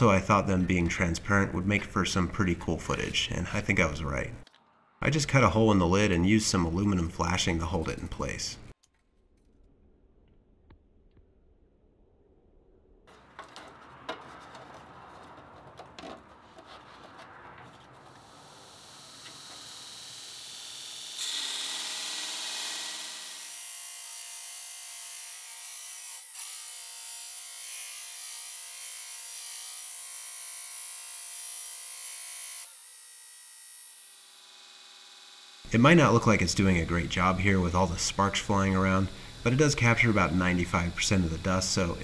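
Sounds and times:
belt grinder grinding metal: 0:18.0 - 0:42.0.

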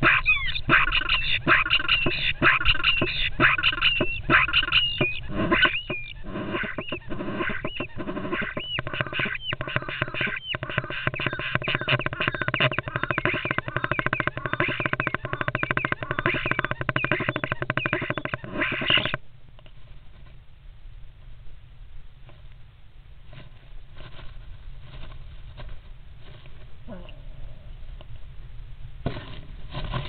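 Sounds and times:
starlings rattling calls: 0:00.0 - 0:19.2.

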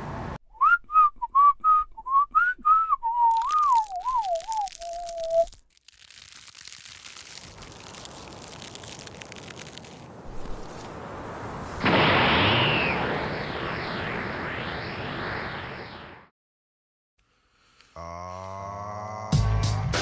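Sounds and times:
person whistling a tune: 0:00.5 - 0:05.5.

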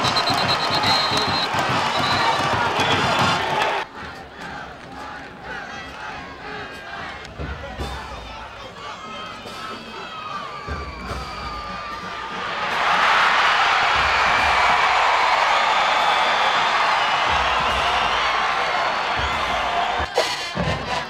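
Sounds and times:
crowd roar of cheering: 0:00.0 - 0:21.0
stadium crowd shouting: 0:00.0 - 0:21.0.

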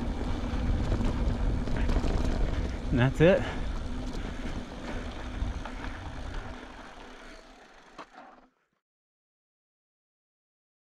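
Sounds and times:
wind on microphone: 0:00.0 - 0:06.6
bike tyres rolling on dirt: 0:00.0 - 0:08.7.

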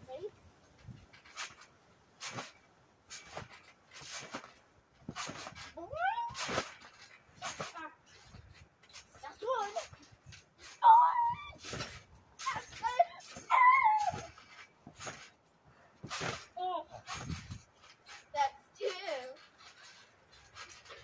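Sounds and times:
trampoline bouncing: 0:00.1 - 0:21.0.

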